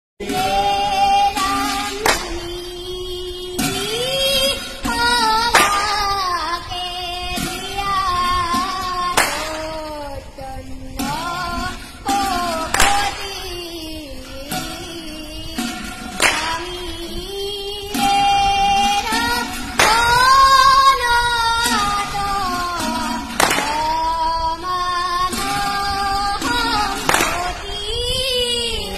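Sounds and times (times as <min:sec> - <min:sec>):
child singing a chant: 0:00.2 - 0:28.9.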